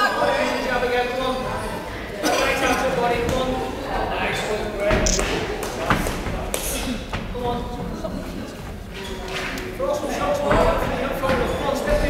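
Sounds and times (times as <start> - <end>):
indistinct crowd voices: 0.0 - 12.0.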